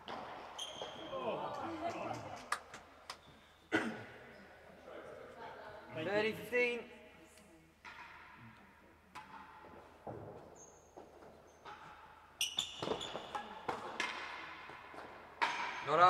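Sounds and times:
ball struck by rackets: 0.0 - 0.9, 11.6 - 15.9.

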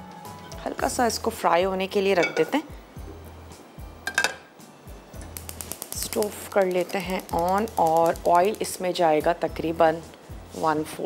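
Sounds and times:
soft background music: 0.0 - 11.0
metal cookware clink: 2.1 - 2.6, 4.1 - 4.5.

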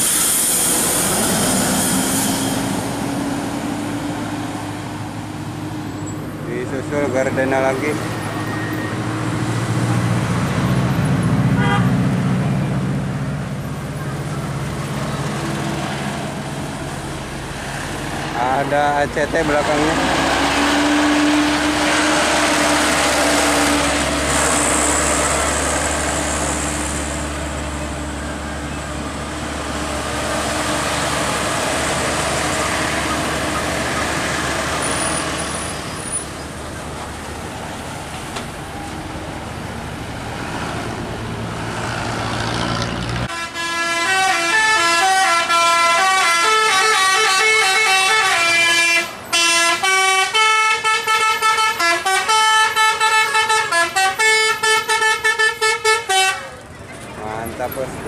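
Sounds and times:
bus diesel engine: 0.0 - 58.0
multi-tone bus horn melody: 11.5 - 12.0, 20.5 - 24.0, 43.2 - 56.7.

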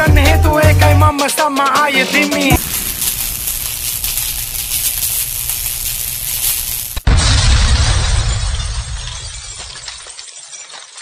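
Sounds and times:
tinkling glass fragments: 2.6 - 7.0, 7.6 - 11.0
glass shattering crash: 2.6 - 11.0.

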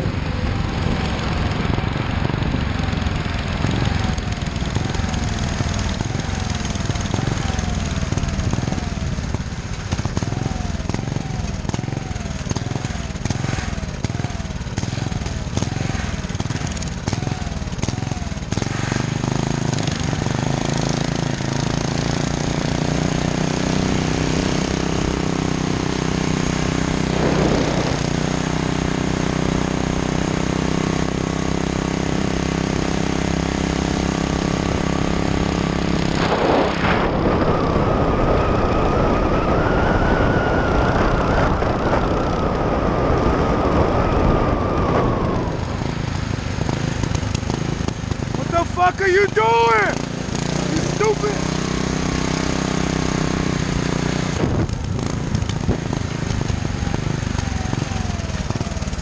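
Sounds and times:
wind noise on microphone: 0.0 - 17.2, 24.1 - 30.2, 34.9 - 48.4, 51.7 - 58.8
small engine revving: 0.0 - 59.0.

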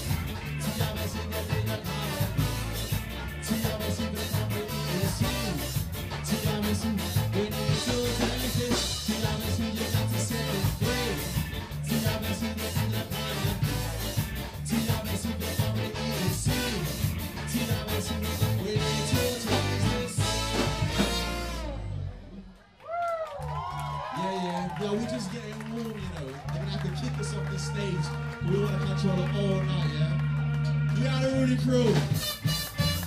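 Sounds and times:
person singing: 0.0 - 21.3
drum kit: 0.0 - 22.1, 31.6 - 33.0
electric guitar: 0.0 - 22.6
walking bass line: 0.0 - 22.6, 26.3 - 33.0
horns: 0.0 - 22.8, 24.6 - 33.0.

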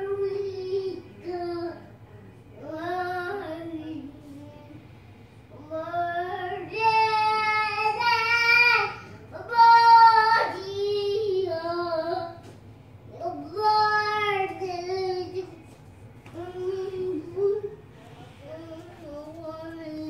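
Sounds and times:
young child singing: 0.0 - 1.9, 2.6 - 4.9, 5.5 - 12.5, 13.1 - 15.7, 16.3 - 20.0.

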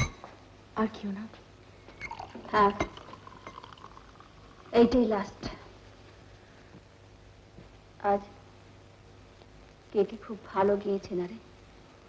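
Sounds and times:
woman speaking: 0.8 - 1.4, 2.5 - 2.9, 4.8 - 5.7, 8.0 - 8.4, 10.0 - 11.4
liquid pouring into glass: 2.0 - 5.0.

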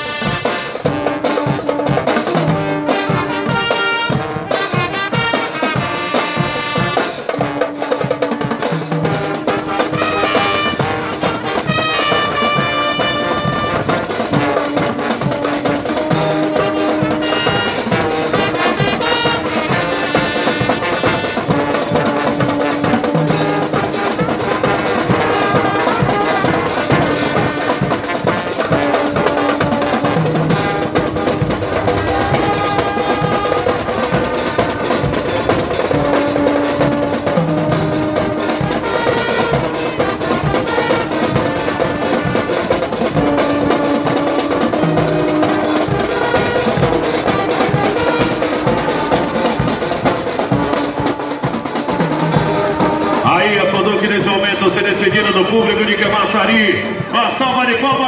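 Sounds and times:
marching band playing: 0.0 - 58.0
trumpets and trombones melody: 0.0 - 58.0.

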